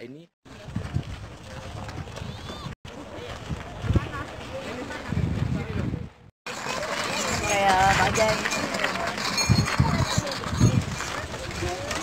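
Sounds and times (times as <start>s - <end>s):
voices outdoors: 0.0s - 12.0s
footsteps on gravel: 6.7s - 12.0s.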